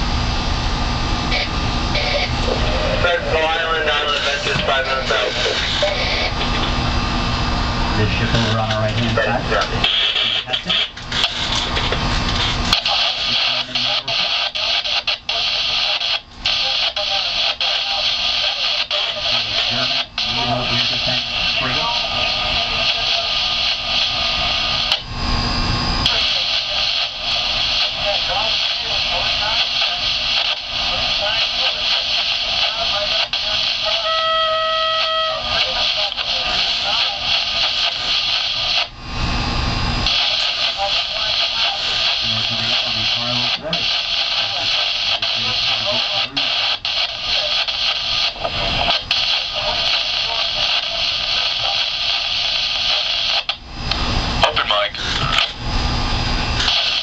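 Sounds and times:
radio speaker hiss: 0.0s - 57.0s
garbled radio chatter: 1.3s - 6.9s, 7.8s - 25.0s, 26.0s - 38.9s, 40.0s - 53.6s, 54.3s - 55.6s, 56.6s - 57.0s.

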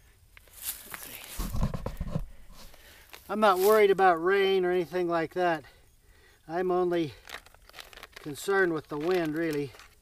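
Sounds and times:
clothing and tarp rustling: 0.5s - 4.0s.

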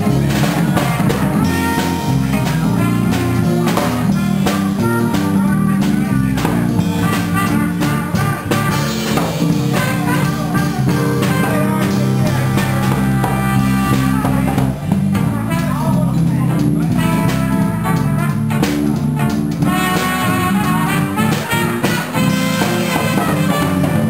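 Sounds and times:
electric guitar: 0.0s - 15.6s, 16.3s - 24.0s
drum kit with cymbals: 0.0s - 24.0s
electric bass line: 0.0s - 24.0s.

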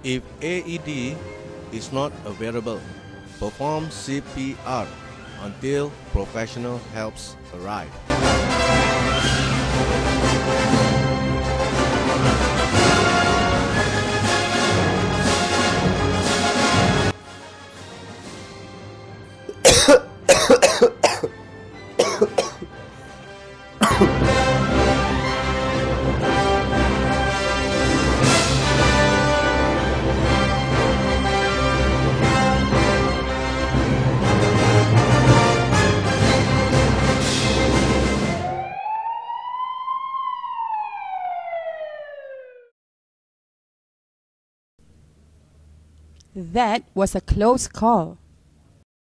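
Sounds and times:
quiet background music: 0.0s - 11.1s, 16.6s - 36.6s
man coughing hard: 19.5s - 21.4s, 22.0s - 22.7s, 23.8s - 24.8s
emergency vehicle siren wail: 37.8s - 42.7s.

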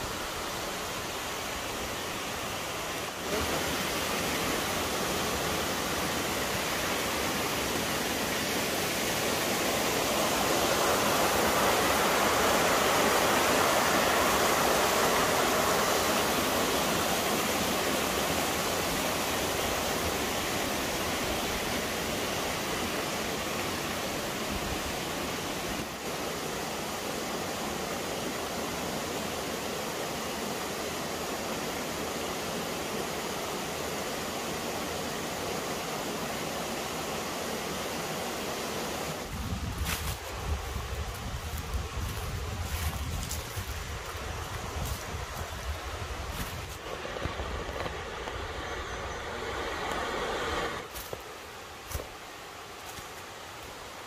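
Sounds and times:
stream rushing over rocks: 0.0s - 54.0s.

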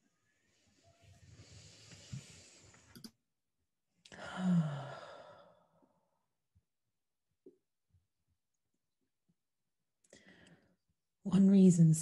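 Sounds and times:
person sighing: 4.1s - 5.6s.

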